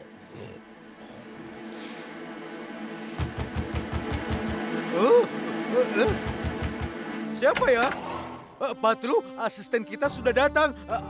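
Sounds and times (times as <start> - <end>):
rapid knocking on wooden door: 3.2 - 4.6, 6.1 - 7.0.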